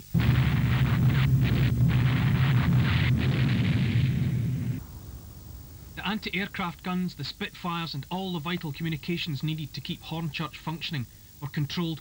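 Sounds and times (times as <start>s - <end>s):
anti-aircraft gunfire: 0.0s - 6.2s
explosions: 0.0s - 6.4s.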